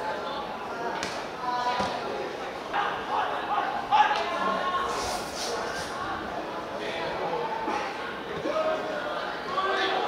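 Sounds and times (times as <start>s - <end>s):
people shouting calls: 2.7s - 4.7s.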